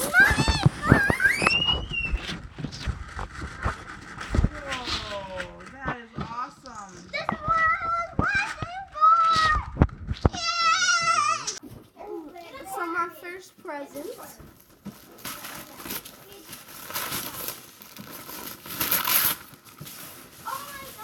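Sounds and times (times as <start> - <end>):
wrapping paper tearing: 14.6 - 21.0.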